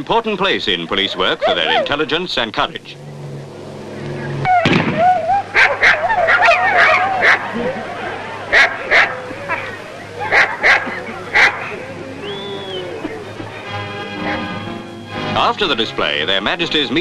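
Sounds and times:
dog barking: 0:05.1 - 0:07.5, 0:08.5 - 0:11.8.

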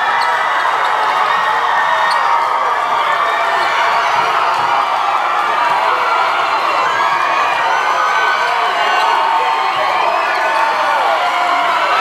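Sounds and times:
large crowd cheering and shouting: 0:00.0 - 0:12.0.

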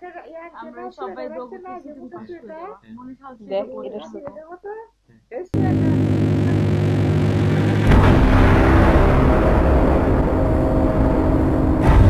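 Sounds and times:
deep droning rumble: 0:05.6 - 0:12.0
loud crash: 0:06.0 - 0:12.0.

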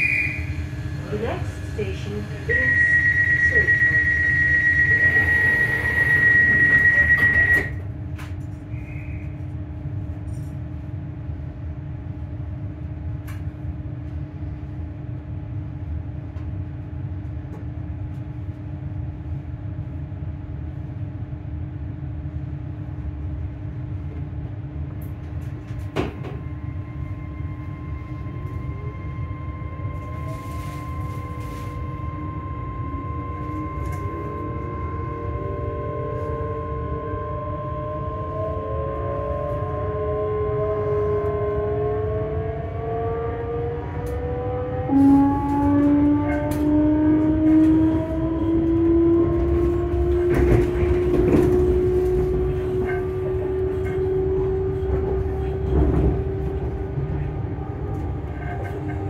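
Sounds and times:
train traction motors whining: 0:00.0 - 0:09.6, 0:25.0 - 0:59.0
wheels rumbling on rail: 0:00.0 - 0:59.0.

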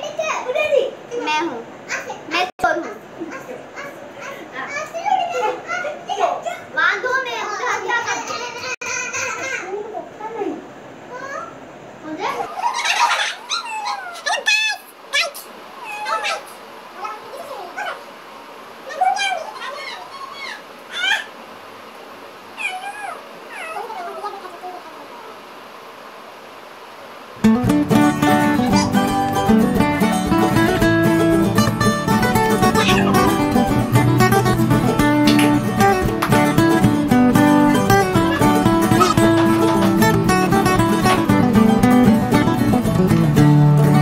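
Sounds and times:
children talking and calling out: 0:00.0 - 0:18.1, 0:18.8 - 0:21.4, 0:22.6 - 0:25.4, 0:28.6 - 0:29.3, 0:32.2 - 0:33.8, 0:37.4 - 0:41.3
cat meowing: 0:22.6 - 0:24.3, 0:32.6 - 0:33.5.

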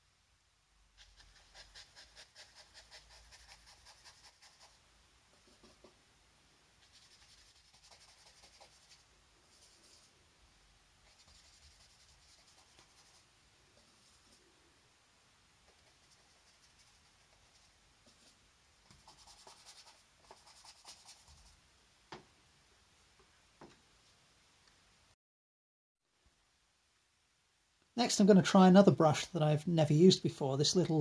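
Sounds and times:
brush scrubbing on paper: 0:01.0 - 0:04.8, 0:06.8 - 0:10.1, 0:11.0 - 0:14.4, 0:15.7 - 0:21.5.

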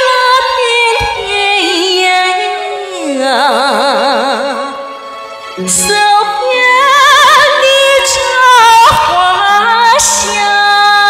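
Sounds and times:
woman singing: 0:00.0 - 0:04.9, 0:05.6 - 0:11.0
instrumental accompaniment: 0:00.0 - 0:11.0.

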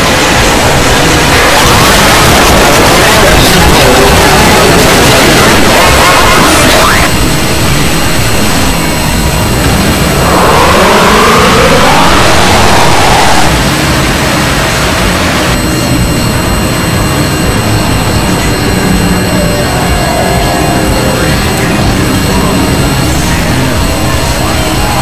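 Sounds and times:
distorted screaming: 0:00.0 - 0:25.0
noise and music roar: 0:00.0 - 0:25.0
wailing pitched sound: 0:00.0 - 0:25.0.

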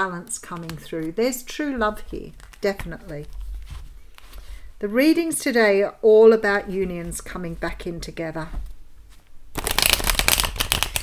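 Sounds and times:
cards being shuffled: 0:00.5 - 0:04.6, 0:08.6 - 0:11.0.

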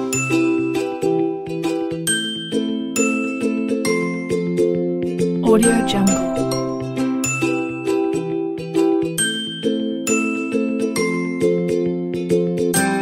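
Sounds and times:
bell-like chiming background music: 0:00.0 - 0:13.0.

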